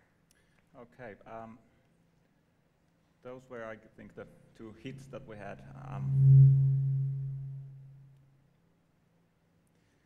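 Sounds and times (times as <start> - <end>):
low humming tone: 5.8 - 8.2.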